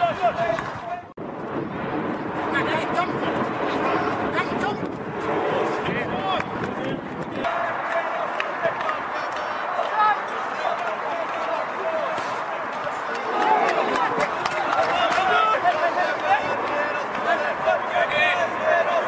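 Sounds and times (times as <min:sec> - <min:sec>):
people calling and shouting: 0:00.0 - 0:01.2, 0:02.4 - 0:19.0.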